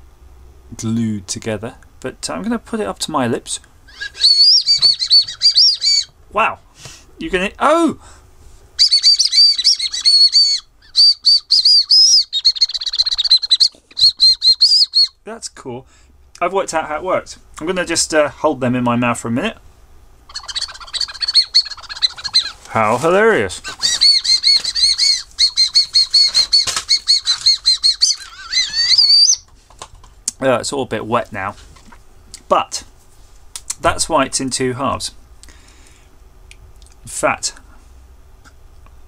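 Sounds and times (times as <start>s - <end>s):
shrill warbling candy whistle: 3.9s - 6.1s, 8.8s - 15.2s, 20.3s - 22.6s, 23.7s - 29.4s
wavering rising whistle: 3.9s - 6.1s.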